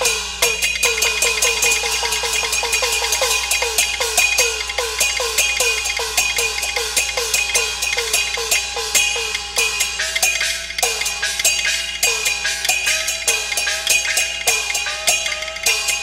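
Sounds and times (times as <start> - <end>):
cymbal strokes: 0.0 - 16.0.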